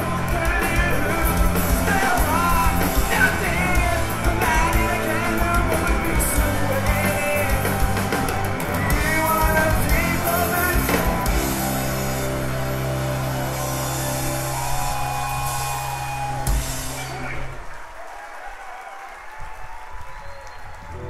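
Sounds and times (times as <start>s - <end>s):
electric guitars and bass chord: 0.0s - 17.6s
crowd cheering and applause: 0.0s - 21.0s.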